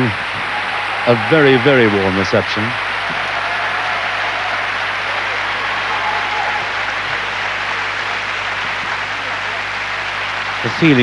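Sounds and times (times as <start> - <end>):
arena crowd applauding: 0.0 - 11.0.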